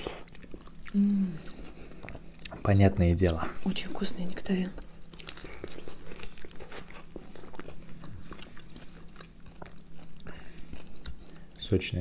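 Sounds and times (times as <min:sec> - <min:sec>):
chewing and biting juicy fruit: 0:00.0 - 0:11.7.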